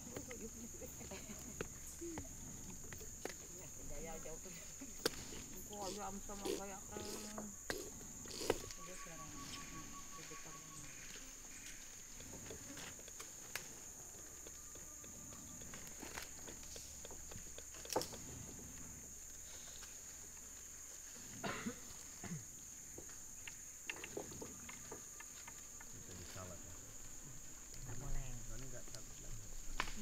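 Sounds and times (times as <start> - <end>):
forest insects droning: 0.0 - 30.0.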